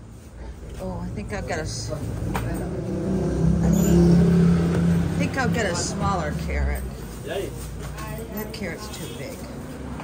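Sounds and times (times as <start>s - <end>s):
vehicle engine running: 0.9s - 7.5s.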